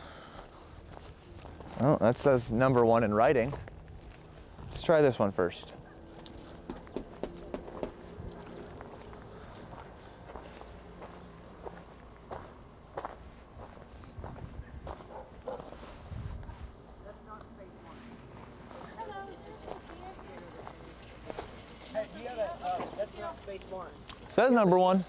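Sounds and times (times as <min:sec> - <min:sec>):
footsteps on gravel: 0:00.4 - 0:04.9, 0:05.6 - 0:16.8, 0:17.9 - 0:21.8.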